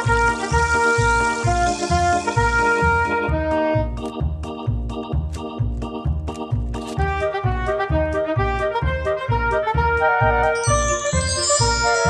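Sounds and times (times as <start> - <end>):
upbeat children's music: 0.0 - 12.0
bright twinkling chime: 10.6 - 12.0.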